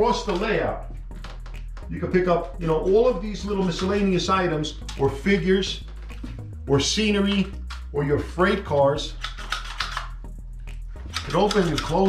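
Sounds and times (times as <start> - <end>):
pickup tool clicking and rattling: 9.1 - 10.2, 11.1 - 12.0.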